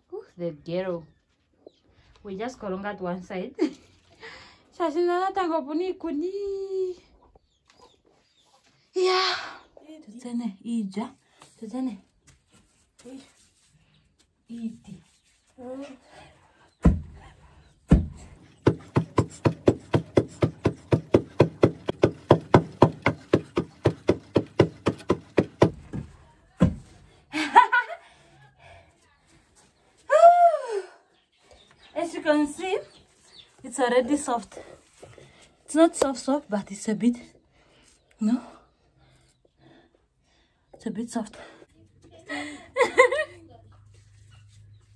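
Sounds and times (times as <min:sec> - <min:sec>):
wooden pestles pounding grain: 0:17.9 - 0:26.0.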